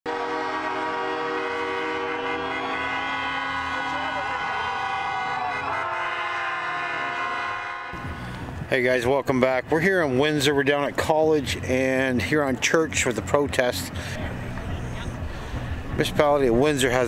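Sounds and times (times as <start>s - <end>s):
vehicle horns sounding a chord: 0.1s - 8.0s.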